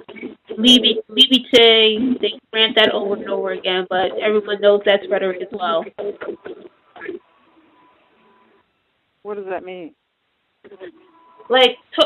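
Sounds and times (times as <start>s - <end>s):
person speaking: 0.0s - 7.2s
faint steady tone: 10.2s - 12.0s.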